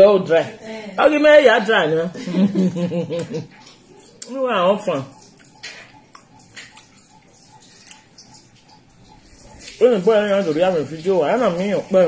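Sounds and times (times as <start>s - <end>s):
chewing and smacking mouth sounds: 3.2s - 11.7s
person speaking: 4.2s - 5.2s, 9.6s - 12.0s.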